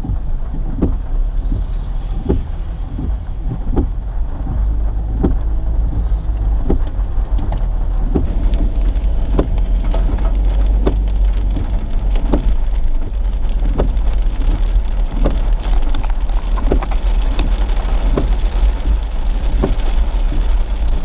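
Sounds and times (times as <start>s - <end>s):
windshield wiper knocks: 0.0s - 20.6s
heavy rain on car windshield: 0.0s - 21.0s
moving car rumble: 0.0s - 21.0s.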